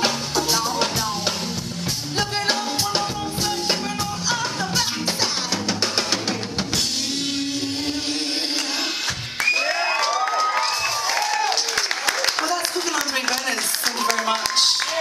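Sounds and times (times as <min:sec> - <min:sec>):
person singing: 0:00.0 - 0:09.2
drum kit with cymbals: 0:00.0 - 0:09.4.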